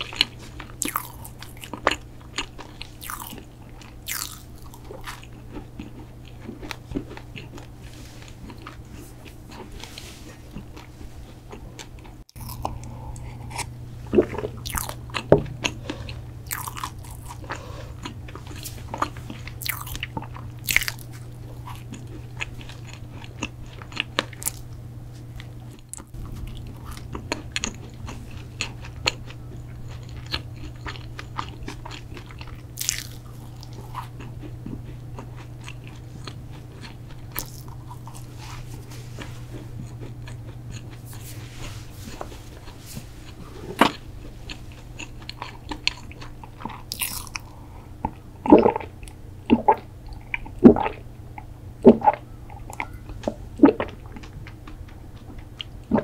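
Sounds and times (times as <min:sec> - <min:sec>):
crisp cookie crunching: 0:00.0 - 0:41.4, 0:42.1 - 0:49.2
quiet chewing: 0:00.0 - 0:56.0
steady low hum: 0:00.0 - 0:56.0.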